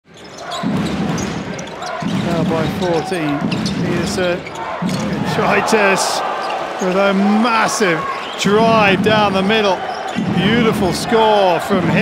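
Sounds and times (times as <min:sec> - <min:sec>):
crowd din: 0:00.2 - 0:12.0.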